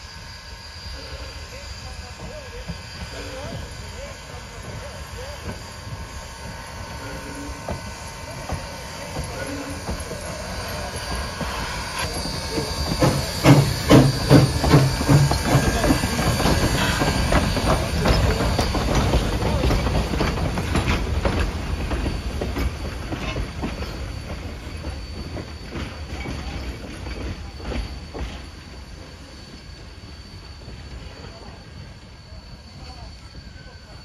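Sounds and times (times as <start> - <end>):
hissing steam: 0.0 - 34.0
steam locomotive chuffing: 0.0 - 34.0
train wheels clicking on rails: 1.4 - 34.0.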